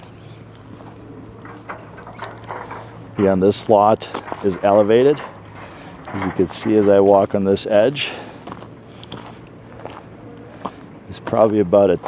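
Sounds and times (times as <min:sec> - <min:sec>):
footsteps crunching on dirt: 0:00.0 - 0:02.0, 0:08.1 - 0:11.7.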